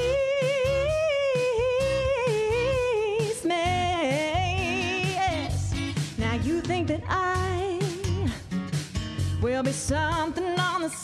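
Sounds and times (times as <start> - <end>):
backing track with drum beat: 0.0 - 11.0.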